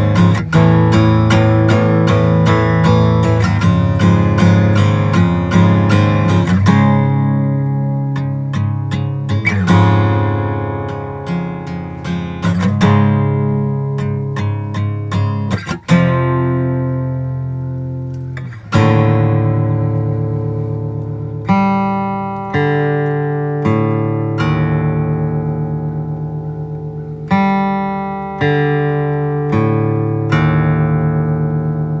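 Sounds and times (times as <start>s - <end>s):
acoustic guitar chord ringing: 0.0s - 32.0s.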